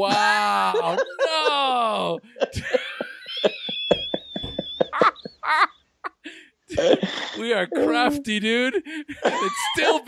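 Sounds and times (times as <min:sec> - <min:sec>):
people laughing: 0:00.0 - 0:10.0.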